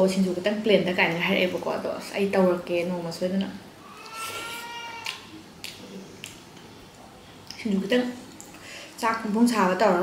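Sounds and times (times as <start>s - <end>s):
cat meowing: 3.8s - 5.2s.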